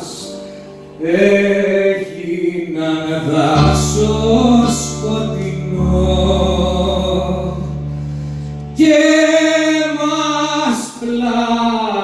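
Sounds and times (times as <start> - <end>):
man singing into a microphone: 0.0 - 8.0, 8.7 - 12.0
low accompaniment: 3.2 - 10.1.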